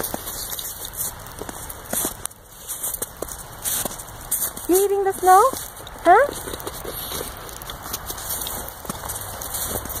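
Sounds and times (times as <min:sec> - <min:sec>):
footsteps crunching in snow: 0:00.0 - 0:10.0.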